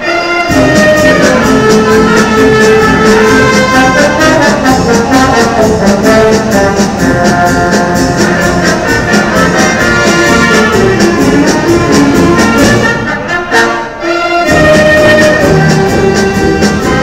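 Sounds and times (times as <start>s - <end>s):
concert band playing: 0.0s - 17.0s
steady drum beat: 0.5s - 12.9s, 14.5s - 17.0s.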